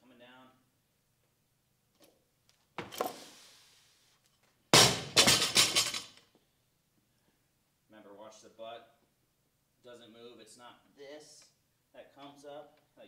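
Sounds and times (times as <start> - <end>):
barbell crashing on floor: 4.7 - 6.2
barbell clatter and stomp: 4.8 - 6.2
plates rattling: 5.1 - 6.1.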